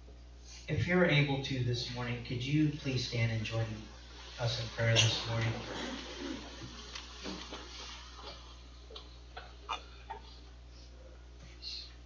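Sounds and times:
low room hum: 0.0 - 12.0
people shuffling: 4.4 - 8.6.

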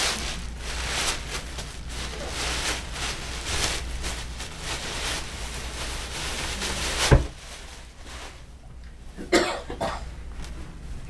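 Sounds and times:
man coughing: 9.2 - 10.2.

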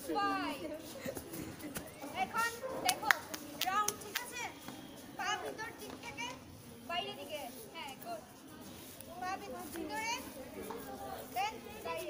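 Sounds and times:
girls chattering and calling out: 0.0 - 12.0.

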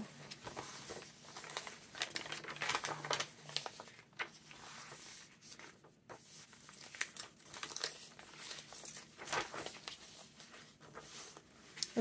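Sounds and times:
paper pages turning: 0.1 - 12.0.

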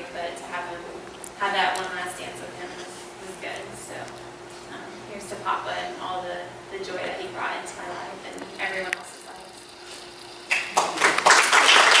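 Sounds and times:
audience applauding: 10.5 - 12.0.

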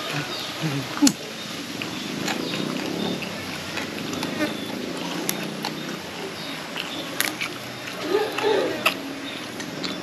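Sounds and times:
low steady rumble: 0.7 - 10.0
person chewing food: 1.8 - 10.0.

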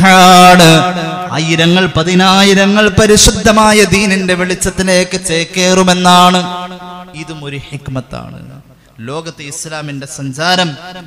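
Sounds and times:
man chanting on held pitch: 0.0 - 11.0.

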